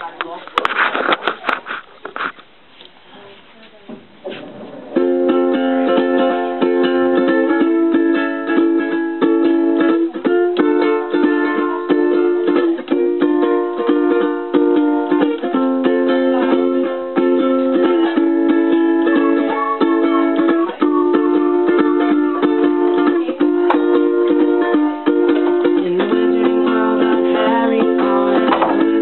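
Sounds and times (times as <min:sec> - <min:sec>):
ukulele strumming chords: 0:04.5 - 0:29.0.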